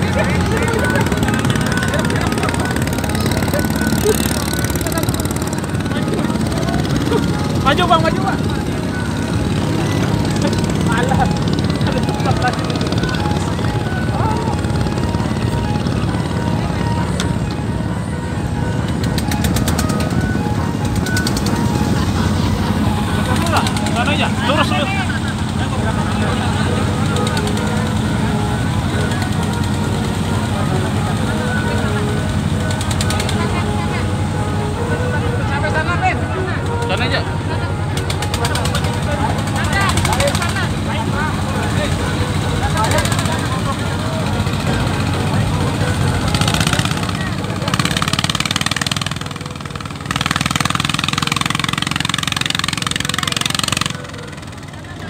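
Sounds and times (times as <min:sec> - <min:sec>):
boat engine running: 0:00.0 - 0:55.0
people's voices: 0:00.0 - 0:55.0.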